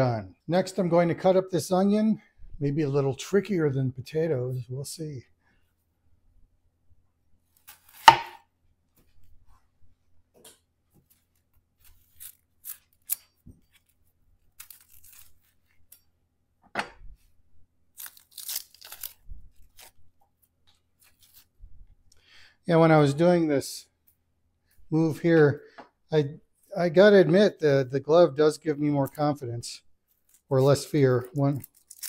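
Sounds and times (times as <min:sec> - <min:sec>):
knife crunching through onion: 0:07.6 - 0:08.4, 0:11.8 - 0:15.6, 0:17.9 - 0:20.0, 0:30.3 - 0:32.0
onion skin crackling and tearing: 0:11.1 - 0:16.0, 0:17.9 - 0:20.1, 0:21.0 - 0:21.5, 0:30.1 - 0:32.0.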